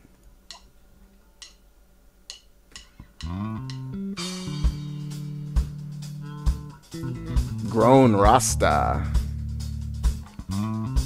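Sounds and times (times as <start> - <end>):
funk band music: 3.2 - 11.0.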